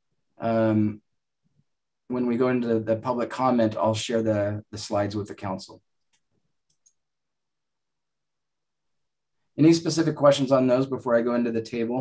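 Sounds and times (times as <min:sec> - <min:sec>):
faint computer mouse clicks: 0:06.0 - 0:07.0.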